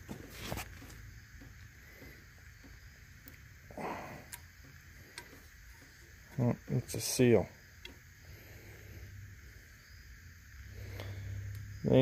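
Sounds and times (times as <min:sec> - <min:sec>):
low steady hum: 0:00.0 - 0:12.0
faint clicks of metal pick: 0:04.2 - 0:06.5, 0:07.8 - 0:08.0.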